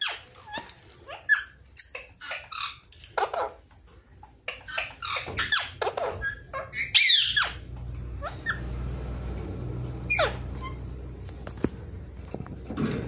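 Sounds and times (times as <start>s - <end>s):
parakeets chirping: 0.0s - 9.2s, 9.9s - 11.2s.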